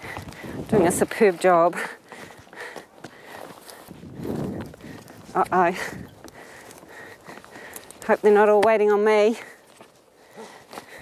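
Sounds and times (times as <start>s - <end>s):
dry bracken crunching underfoot: 0.0s - 11.0s.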